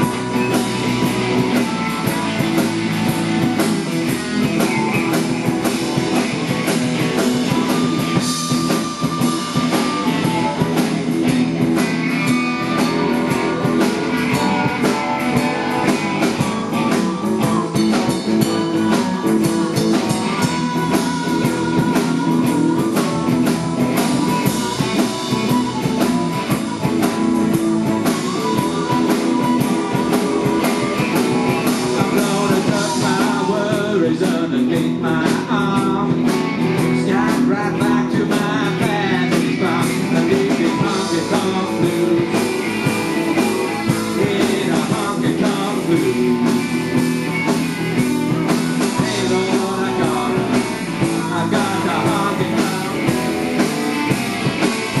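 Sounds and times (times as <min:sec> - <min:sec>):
blues band playing: 0:00.0 - 0:55.0.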